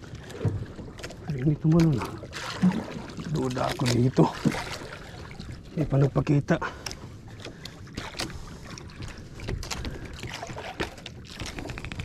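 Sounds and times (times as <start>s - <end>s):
water lapping against boat hull: 0.0s - 12.0s
fishing line clicks and rustles: 9.5s - 12.0s.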